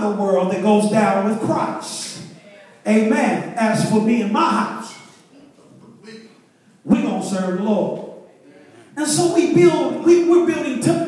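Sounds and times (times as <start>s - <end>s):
man preaching: 0.0s - 5.2s, 6.0s - 11.0s.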